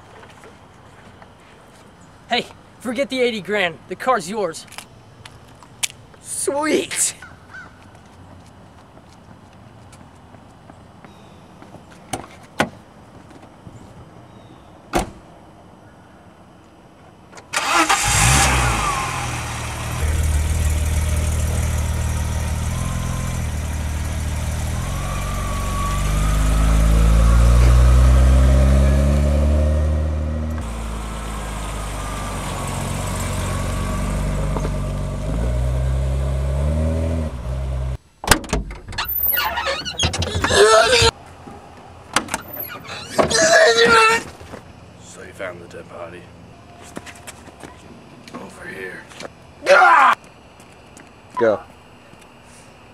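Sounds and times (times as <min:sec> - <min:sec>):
car engine starting and revving: 0:17.6 - 0:38.0.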